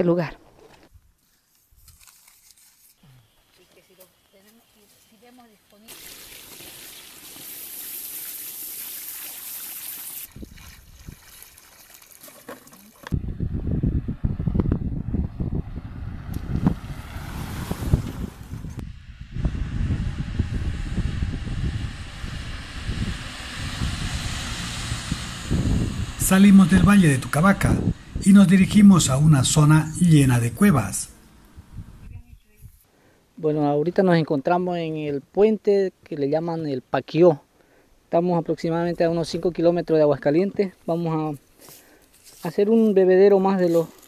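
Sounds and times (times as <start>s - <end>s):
water pouring and splashing: 5.9s - 13.1s, 16.9s - 18.5s
uneven low rumble: 18.3s - 32.3s.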